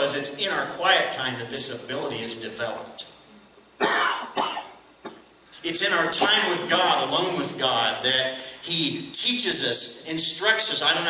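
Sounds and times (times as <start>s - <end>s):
man coughing: 3.8s - 5.3s, 6.2s - 6.6s.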